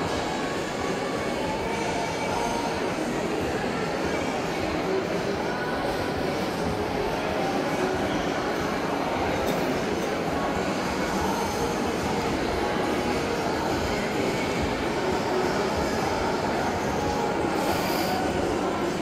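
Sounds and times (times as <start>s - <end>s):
crowd of shoppers talking: 0.0s - 19.0s.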